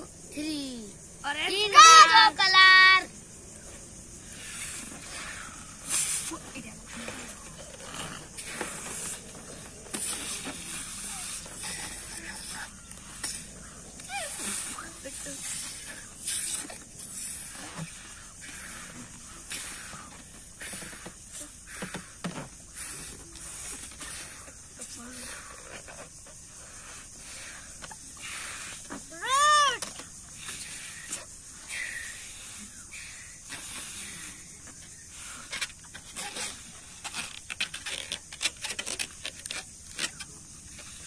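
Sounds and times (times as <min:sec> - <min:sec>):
breathy puffs into balloon: 0:04.2 - 0:29.2, 0:30.2 - 0:37.3
balloon squeaky glide: 0:05.9 - 0:13.4.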